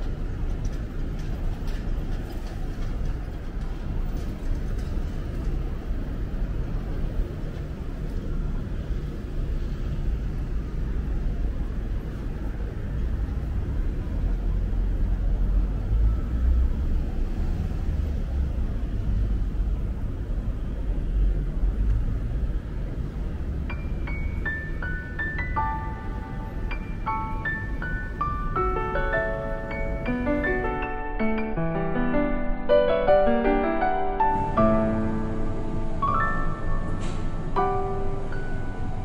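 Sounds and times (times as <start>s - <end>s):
road traffic rumble: 0.0s - 31.6s, 32.9s - 39.0s.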